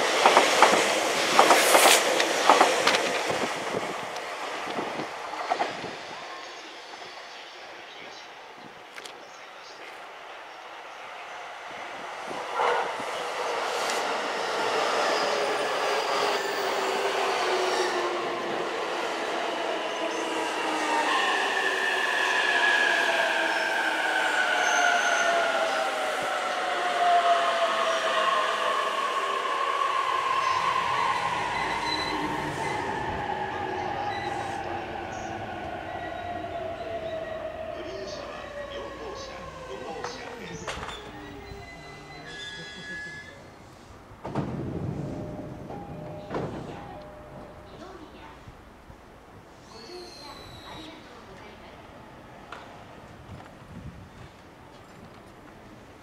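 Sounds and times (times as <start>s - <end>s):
train wheels on rail: 0.0s - 7.2s, 11.8s - 56.0s.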